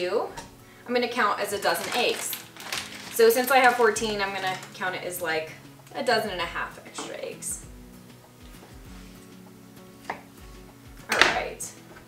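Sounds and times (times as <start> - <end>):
food pieces clattering into metal pot: 1.6 - 5.0.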